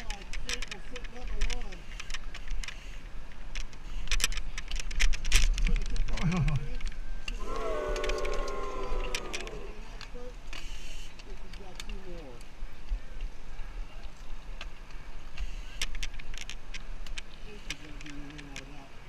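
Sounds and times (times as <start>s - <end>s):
bike clicks and knocks: 0.0s - 7.0s
background voices: 7.4s - 10.2s.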